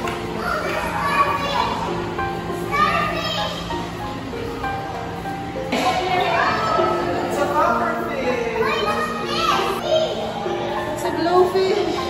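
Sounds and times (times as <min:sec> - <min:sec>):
children talking and calling out: 0:00.0 - 0:12.0
hum of indoor hall: 0:00.0 - 0:12.0
music playing: 0:00.0 - 0:12.0.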